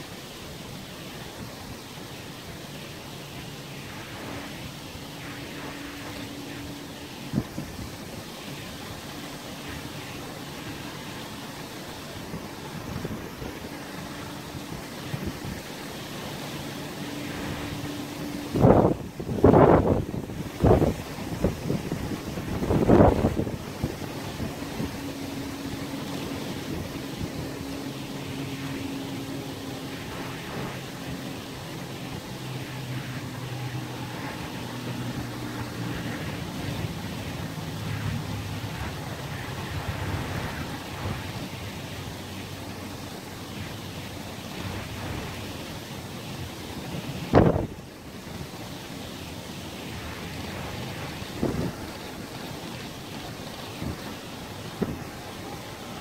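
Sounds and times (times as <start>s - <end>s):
wind blowing over microphone: 0.8s - 56.0s
wind gust buffeting microphone: 3.8s - 42.9s, 46.2s - 48.4s, 49.7s - 56.0s.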